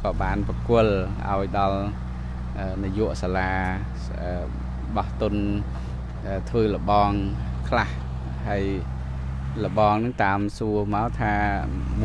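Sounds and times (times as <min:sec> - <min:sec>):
man speaking: 0:00.0 - 0:08.9, 0:09.6 - 0:12.0
heavy machine engine drone: 0:00.0 - 0:12.0.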